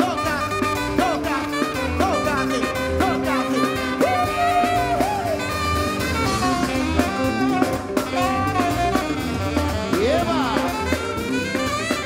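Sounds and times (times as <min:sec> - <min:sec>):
drum kit: 0:00.0 - 0:12.0
horn section holding notes: 0:00.0 - 0:12.0
live band playing upbeat groove: 0:00.0 - 0:12.0.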